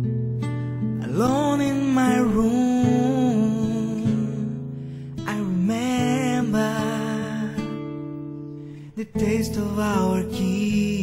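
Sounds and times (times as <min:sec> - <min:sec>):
strummed acoustic guitar chord: 0:00.0 - 0:11.0.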